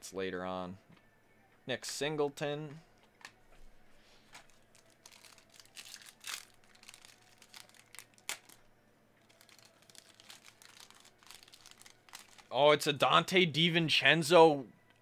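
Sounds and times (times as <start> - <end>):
foil wrapper crinkling and tearing: 4.5 - 8.6, 9.2 - 12.6.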